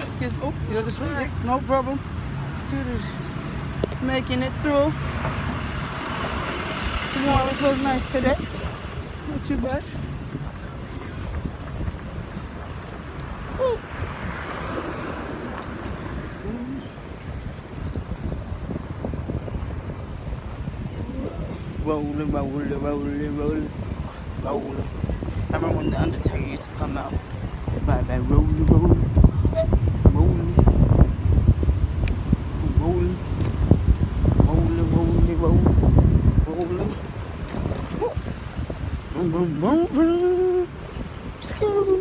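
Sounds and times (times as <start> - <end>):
street traffic rumble: 0.0 - 42.0
wheels rolling on concrete: 2.9 - 22.8.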